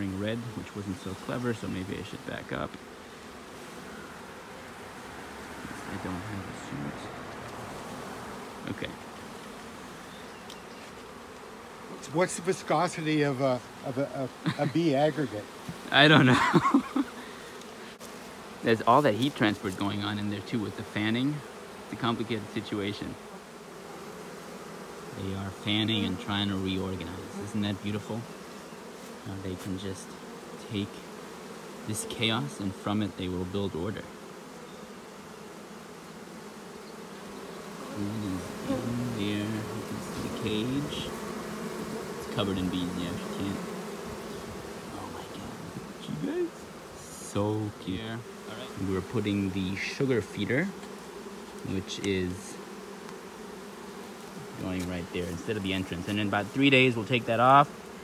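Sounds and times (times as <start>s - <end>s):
bees buzzing: 0.0s - 58.0s.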